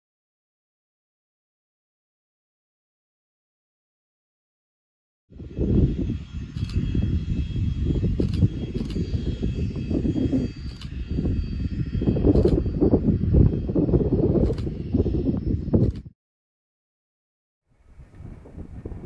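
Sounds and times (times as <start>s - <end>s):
wind buffeting microphone: 5.3s - 16.1s, 17.7s - 19.0s
distant jet engines whining: 5.4s - 16.1s.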